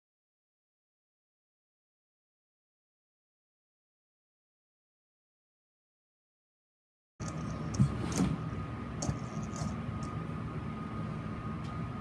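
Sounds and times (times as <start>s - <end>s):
toy robot humming with high whine: 7.2s - 8.4s, 9.0s - 10.2s.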